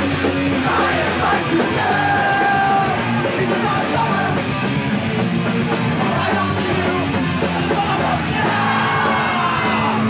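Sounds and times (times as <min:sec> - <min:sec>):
punk band playing live: 0:00.0 - 0:10.0
shouted vocals: 0:00.6 - 0:04.4, 0:07.5 - 0:10.0.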